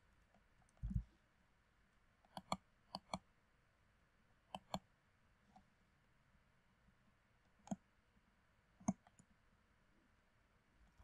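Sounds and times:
computer mouse button clicks: 2.3s - 3.2s, 4.6s - 4.8s.

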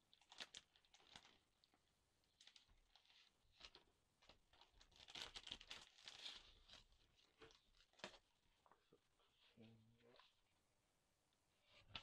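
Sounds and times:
paper and packaging crinkling: 0.1s - 8.3s.

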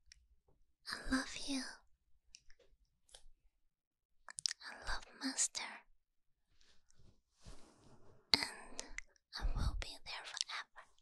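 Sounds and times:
breathy whispering: 0.9s - 1.9s, 4.4s - 5.9s, 8.4s - 11.0s
wet mouth sounds: 4.3s - 4.6s.

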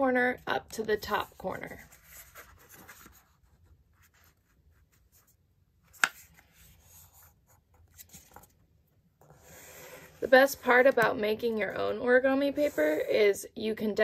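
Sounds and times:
paper folding and rustling: 1.1s - 11.1s.

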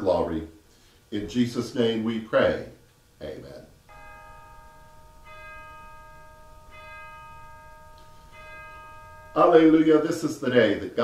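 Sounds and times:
bell tones ringing: 3.9s - 10.7s.

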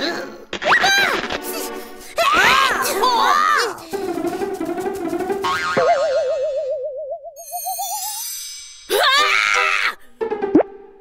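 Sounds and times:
background music: 0.0s - 6.2s, 7.4s - 11.0s.

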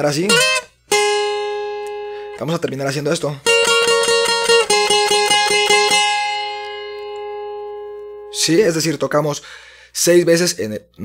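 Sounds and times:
twelve-string acoustic guitar picking: 0.1s - 8.5s.

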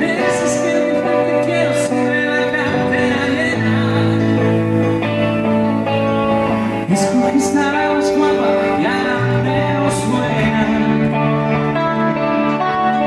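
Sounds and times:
man singing: 0.0s - 5.7s, 6.5s - 13.0s
electric guitar: 0.0s - 13.0s
stage piano: 0.0s - 13.0s.

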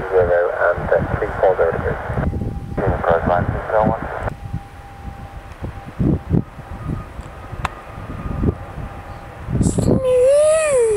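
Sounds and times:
radio transmission voice: 0.0s - 4.3s
turboprop airliner rumble: 0.0s - 10.9s
wind buffeting microphone: 0.0s - 10.9s.

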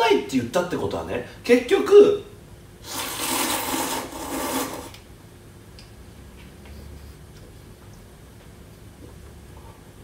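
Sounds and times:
person slurping noodles: 2.8s - 5.0s.

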